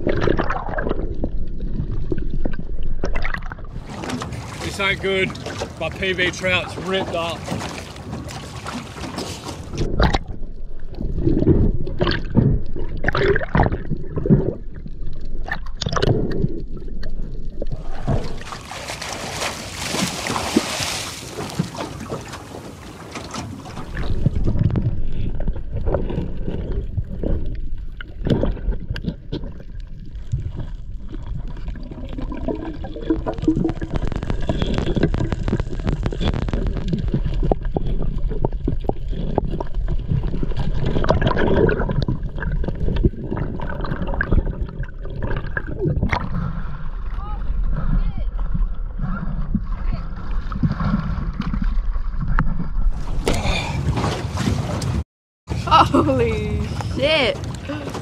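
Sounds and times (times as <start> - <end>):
underwater rumble of moving water: 0.0 - 58.0.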